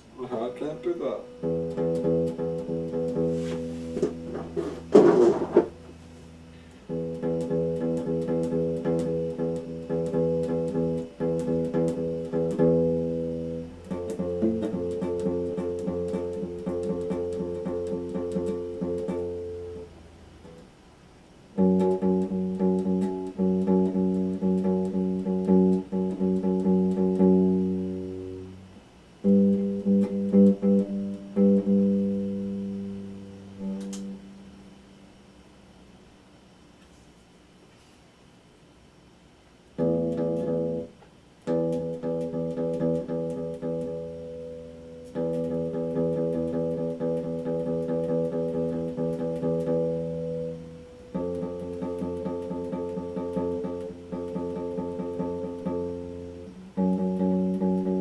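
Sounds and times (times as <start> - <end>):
electric guitar: 0.6 - 20.7, 21.6 - 34.5, 39.8 - 58.0.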